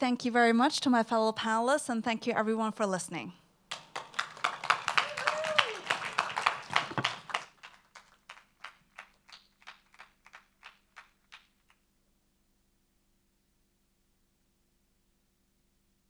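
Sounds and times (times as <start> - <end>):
applause: 3.7 - 11.8.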